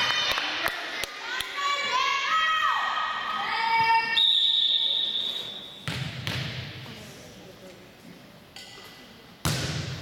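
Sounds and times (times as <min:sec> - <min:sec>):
referee's whistle blast: 0:04.1 - 0:05.8.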